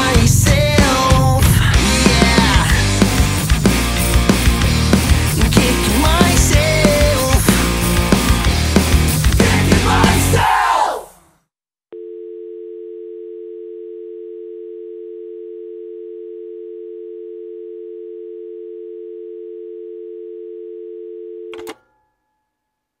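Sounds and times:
telephone dial tone: 0:12.0 - 0:21.8
click: 0:21.5 - 0:21.8.

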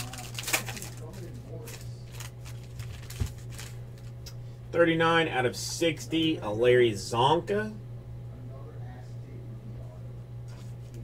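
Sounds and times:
foil wrapper crinkling and tearing: 0:00.0 - 0:04.2
steady low hum: 0:00.0 - 0:11.0.

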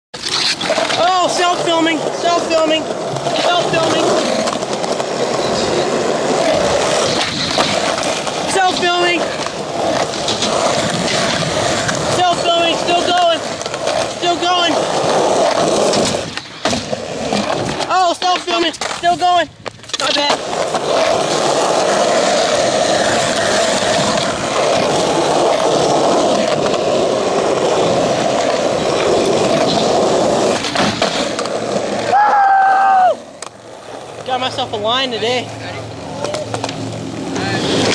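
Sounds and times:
skateboard wheels rolling on concrete: 0:00.1 - 0:37.9.

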